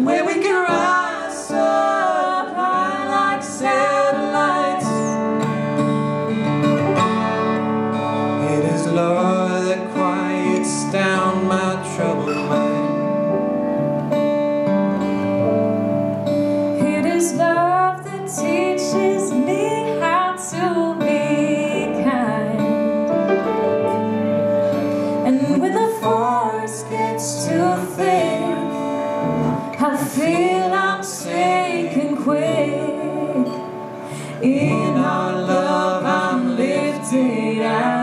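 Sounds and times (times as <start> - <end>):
acoustic guitar: 0.0 - 38.0
grand piano: 0.0 - 38.0.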